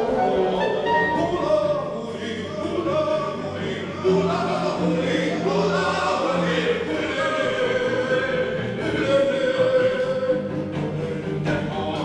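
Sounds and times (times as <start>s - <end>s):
cello low sustained note: 0.0s - 1.7s
slow ensemble music: 0.0s - 5.9s
singing voice: 0.0s - 12.0s.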